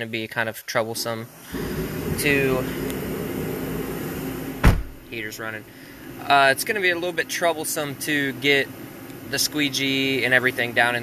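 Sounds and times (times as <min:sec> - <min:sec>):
car heater blower humming: 0:01.0 - 0:11.0
sharp knock: 0:04.6 - 0:05.0.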